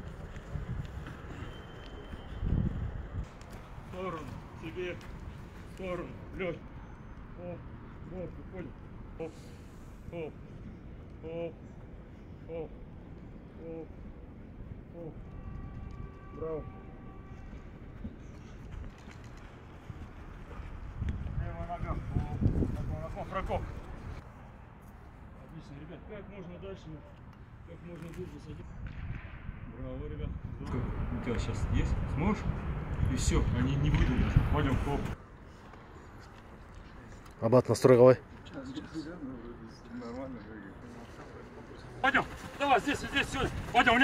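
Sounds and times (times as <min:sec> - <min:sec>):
wind buffeting microphone: 0:00.0 - 0:05.4, 0:17.6 - 0:24.2, 0:28.6 - 0:35.2, 0:42.2 - 0:44.0.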